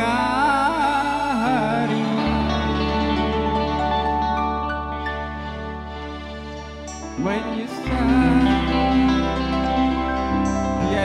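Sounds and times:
bass: 0.0s - 11.0s
keyboard chords: 0.0s - 11.0s.

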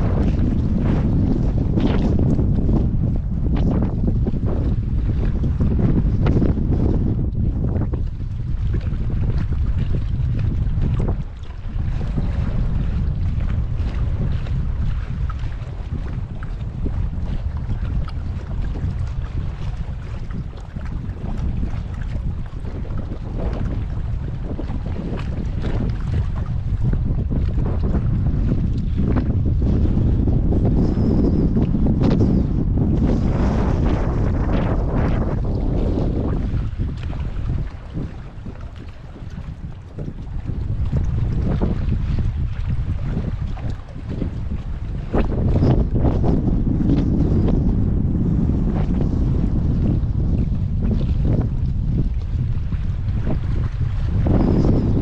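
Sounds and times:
small waves slapping hull: 0.0s - 55.0s
wind buffeting microphone: 0.0s - 55.0s.

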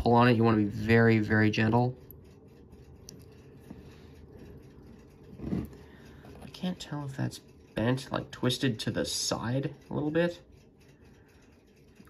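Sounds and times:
low steady hum: 0.0s - 12.0s
tweezers clicking: 1.6s - 3.6s.

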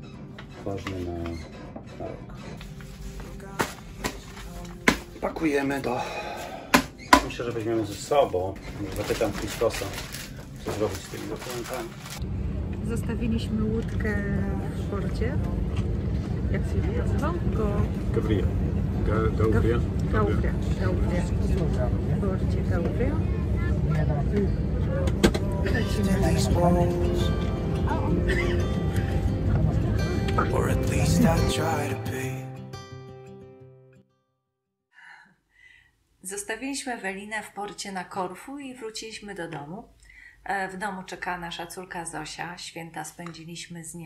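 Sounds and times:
paper sheets being handled: 2.6s - 5.2s, 7.8s - 12.2s
aircraft air system rumble: 12.2s - 32.3s
murmur of passengers' voices: 12.8s - 32.3s.

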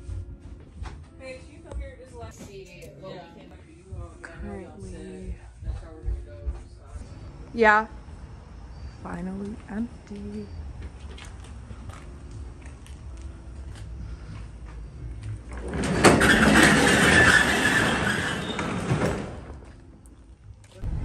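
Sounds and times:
roll-up door rattling: 15.4s - 19.7s.

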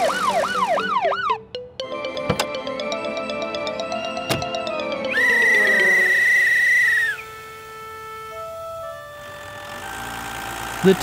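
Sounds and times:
held music notes: 0.0s - 11.0s
police whistle blast: 5.1s - 7.5s.

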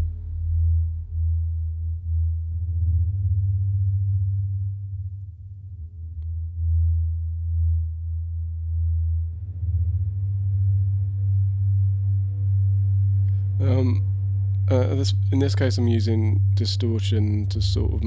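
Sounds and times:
ambient synth pads: 0.0s - 18.0s
distorted synth sub-bass: 0.0s - 18.0s.

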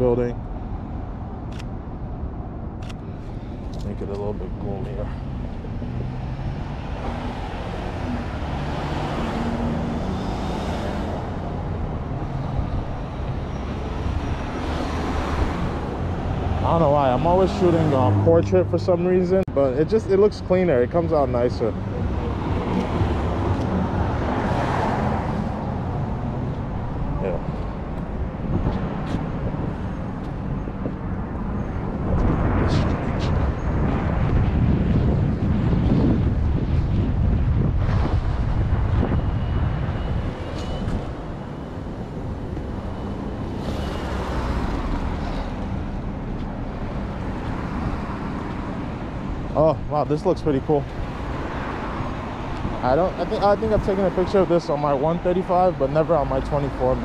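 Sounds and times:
cars passing: 0.0s - 57.0s
wind buffeting microphone: 21.6s - 54.6s.

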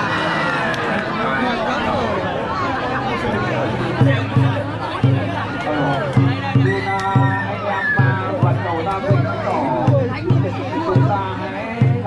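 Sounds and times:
crowd chatter: 0.0s - 12.0s
large drum beating: 3.9s - 12.0s.

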